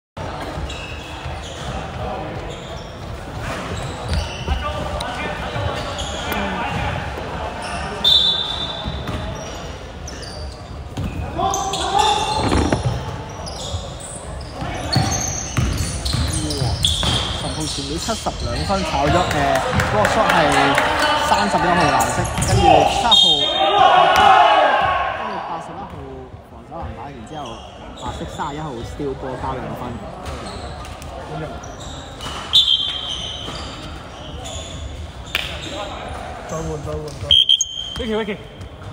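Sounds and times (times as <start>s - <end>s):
players' voices: 0.2s - 38.9s
basketball bouncing on wooden court: 14.9s - 17.3s.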